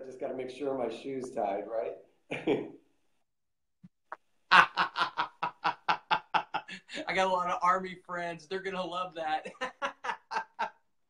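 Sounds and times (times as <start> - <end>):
man laughing heartily: 2.3 - 2.8, 4.5 - 7.0, 9.4 - 10.9.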